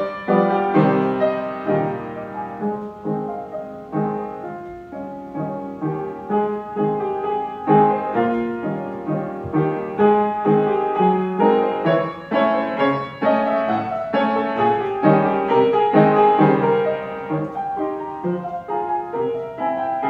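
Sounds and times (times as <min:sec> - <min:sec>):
solo piano piece: 0:00.0 - 0:20.0.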